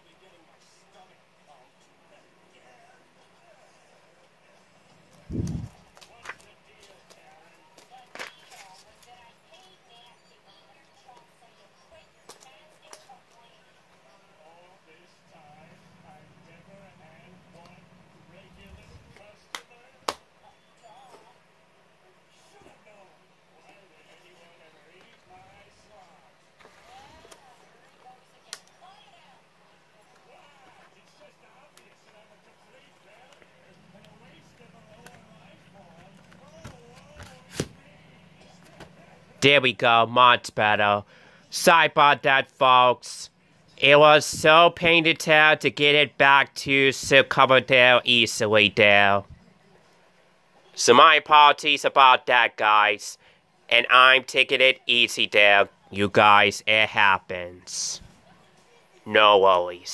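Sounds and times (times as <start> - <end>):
faint murmur of voices: 0.0 - 39.4, 57.8 - 59.9.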